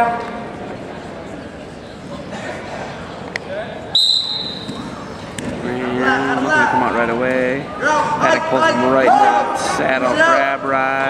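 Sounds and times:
referee's whistle blast: 4.0 - 4.8.

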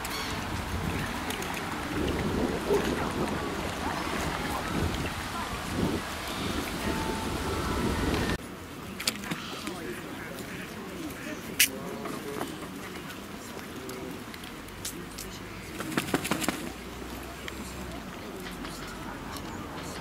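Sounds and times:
wind buffeting microphone: 0.0 - 8.4
indistinct voices: 0.0 - 20.0.

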